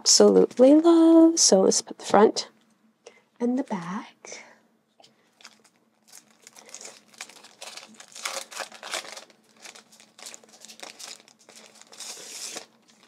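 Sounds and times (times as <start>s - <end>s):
plastic sticker sheets crinkling: 0.1s - 1.0s, 5.3s - 13.0s.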